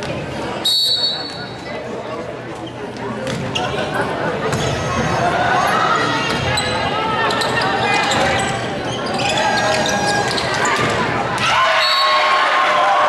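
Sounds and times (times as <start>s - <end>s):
voices of players and spectators: 0.0s - 13.0s.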